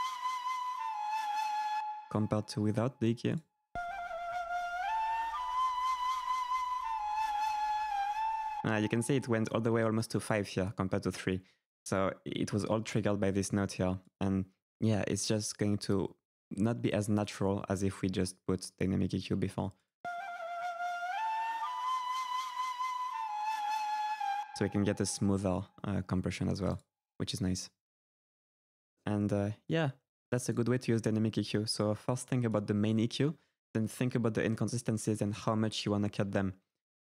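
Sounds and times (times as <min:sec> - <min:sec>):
flute holding a long note: 0:00.0 - 0:02.6, 0:03.8 - 0:09.6, 0:20.1 - 0:25.3.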